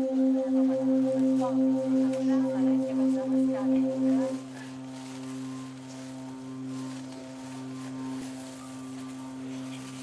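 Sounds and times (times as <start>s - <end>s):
sustained keyboard chord: 0.0s - 6.1s.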